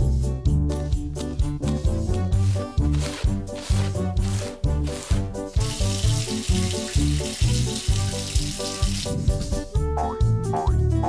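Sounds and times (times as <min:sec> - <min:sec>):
bouncy cartoon music: 0:00.0 - 0:11.0
running tap water: 0:04.9 - 0:09.7.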